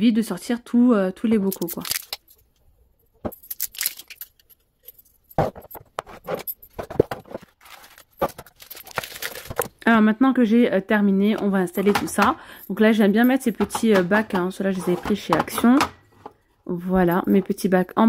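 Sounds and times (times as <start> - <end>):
scraping and rustling: 3.4 - 9.7
glass jars clinking on wood: 13.1 - 16.0.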